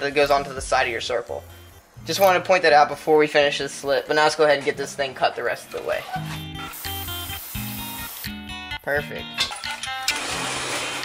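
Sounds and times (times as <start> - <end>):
acoustic guitar music: 4.5 - 11.0.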